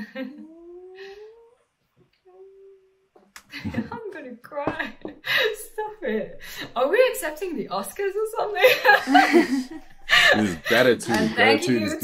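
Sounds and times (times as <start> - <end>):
person holding rising vocal sound: 0.4 - 3.0
person laughing: 8.8 - 10.6.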